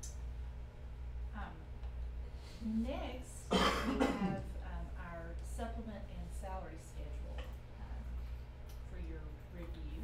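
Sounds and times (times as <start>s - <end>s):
person coughing: 3.5s - 4.5s.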